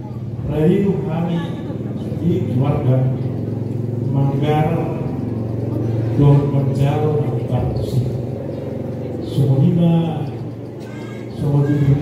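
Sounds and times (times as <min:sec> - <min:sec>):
man speaking over loudspeakers: 0:00.2 - 0:05.3, 0:06.0 - 0:08.4, 0:09.1 - 0:12.0.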